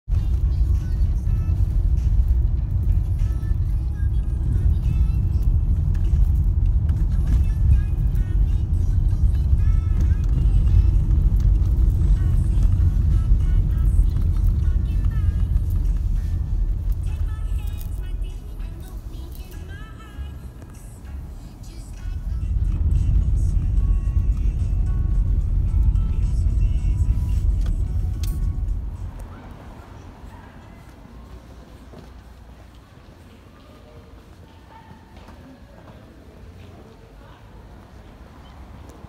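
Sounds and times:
music playing: 0:00.1 - 0:30.2
car road noise on cobbles: 0:00.1 - 0:33.3.

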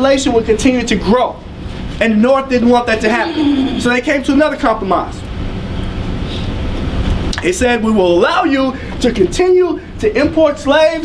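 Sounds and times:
low rumbling background noise: 0:00.0 - 0:11.0.

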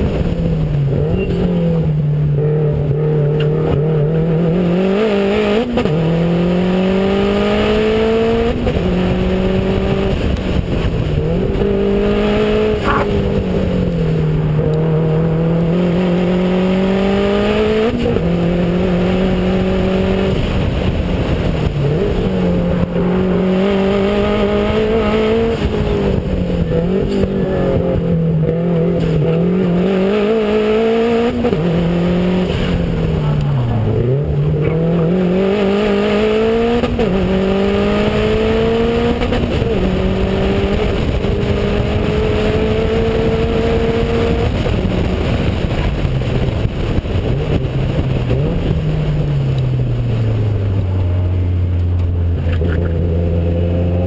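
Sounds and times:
car engine accelerating: 0:00.0 - 0:54.0
wind and road noise: 0:00.0 - 0:54.0.

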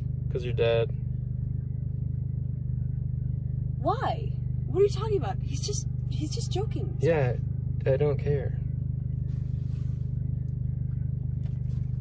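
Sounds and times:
car engine and road rumble: 0:00.0 - 0:12.0.

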